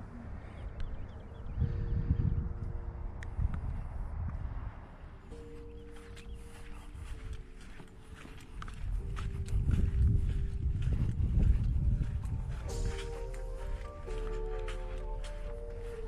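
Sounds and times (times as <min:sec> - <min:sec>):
wind rumbling on microphone: 0:00.0 - 0:14.3
soft sustained music notes: 0:00.0 - 0:16.0
footsteps in sand: 0:03.6 - 0:16.0.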